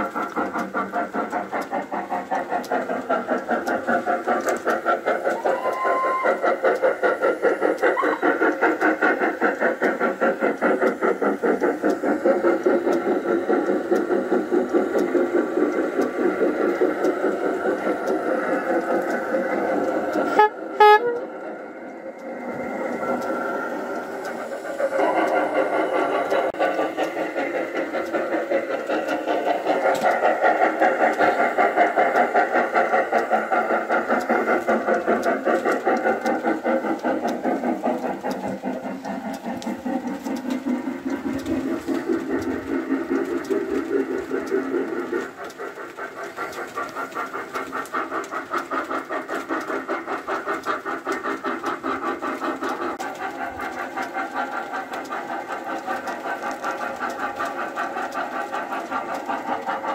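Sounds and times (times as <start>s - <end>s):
steam engine chugging: 0.0s - 59.9s.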